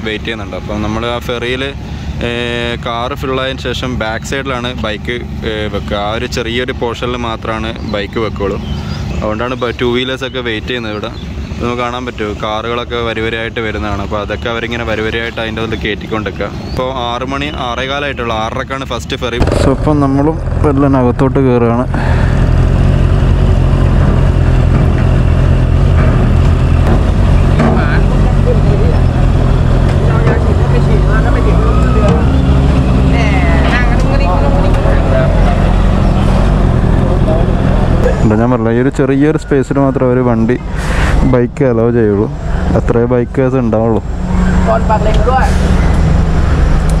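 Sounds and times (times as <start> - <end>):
low engine hum: 0.0 - 47.0.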